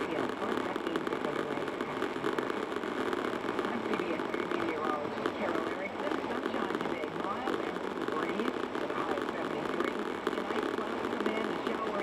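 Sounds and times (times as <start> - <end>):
muffled radio voice: 0.0 - 2.6, 3.6 - 12.0.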